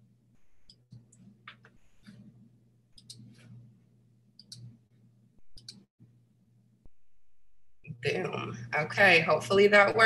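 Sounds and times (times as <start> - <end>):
computer mouse clicks: 0.4 - 2.2, 3.0 - 3.5, 4.4 - 4.8, 5.4 - 5.9.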